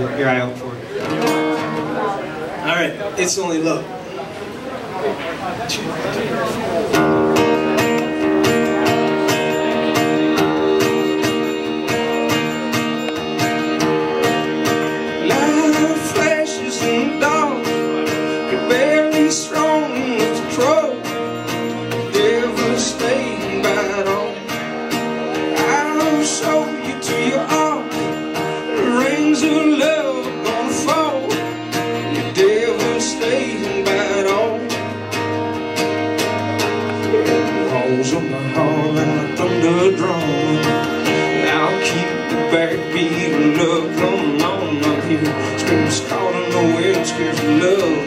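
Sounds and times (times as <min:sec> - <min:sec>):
acoustic guitar strumming: 0:00.0 - 0:48.0
upright bass: 0:06.8 - 0:48.0.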